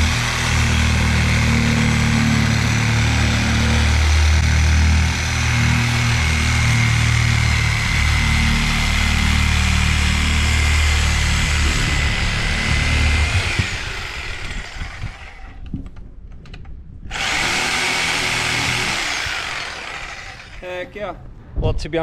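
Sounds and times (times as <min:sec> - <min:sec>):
reciprocating saw cutting rubber: 0:00.0 - 0:15.7, 0:17.1 - 0:20.8.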